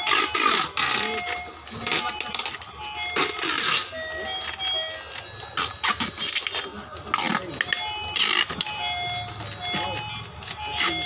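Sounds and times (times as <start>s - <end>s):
toy electronic melody: 0.0s - 11.0s.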